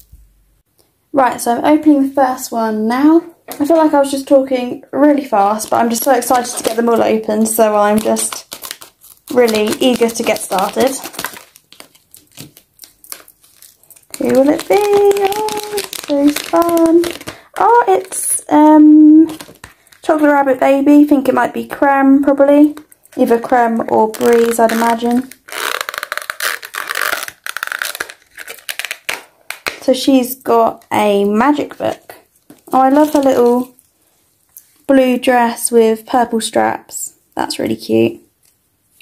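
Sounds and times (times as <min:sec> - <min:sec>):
plastic packet crinkling: 0:05.2 - 0:21.4, 0:22.5 - 0:29.9, 0:31.6 - 0:33.9.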